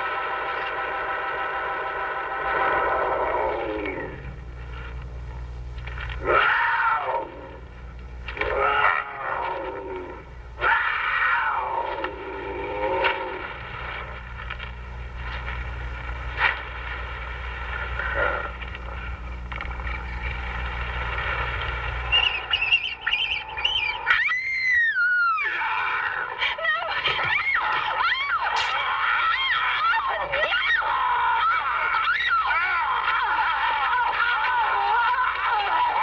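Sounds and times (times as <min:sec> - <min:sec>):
low steady hum: 0:00.0 - 0:36.0
wavering wolf howls: 0:06.2 - 0:07.6, 0:08.4 - 0:13.4, 0:23.8 - 0:36.0
high wavering cry: 0:22.1 - 0:36.0.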